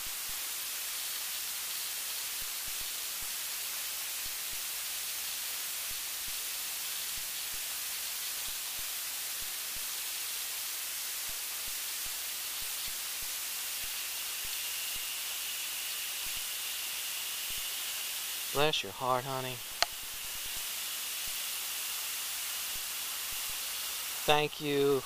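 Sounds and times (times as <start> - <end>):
recording noise hiss: 0.0 - 25.0.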